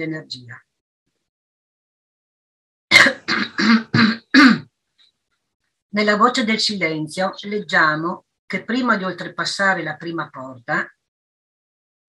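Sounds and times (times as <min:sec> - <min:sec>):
woman coughing: 0:02.9 - 0:04.7.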